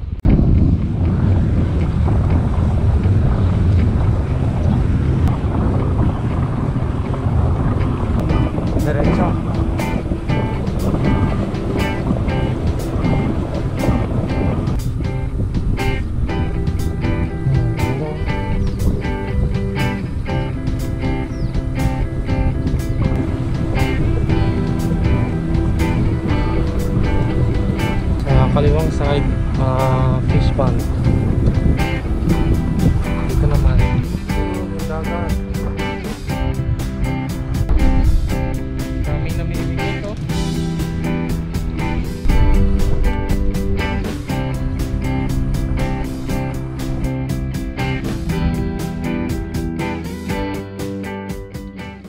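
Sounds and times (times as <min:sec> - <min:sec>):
wind rushing over microphone: 0:00.0 - 0:50.6
background music with beat: 0:07.9 - 0:52.0.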